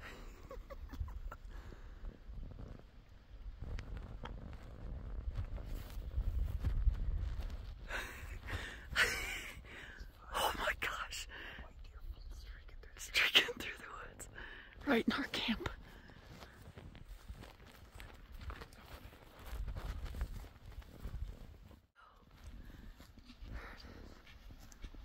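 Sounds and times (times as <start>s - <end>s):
low rumble on microphone: 1.0s - 8.6s
whispered voices: 10.1s - 15.7s.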